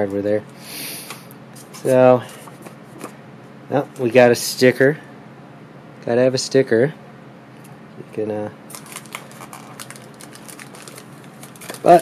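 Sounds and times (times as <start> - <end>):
plastic bag crinkling: 8.7 - 12.0.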